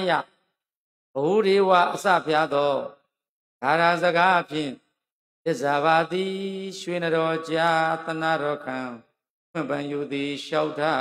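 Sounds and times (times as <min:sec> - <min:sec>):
man chanting melodically: 0:00.0 - 0:00.4, 0:01.2 - 0:04.8, 0:05.5 - 0:11.0.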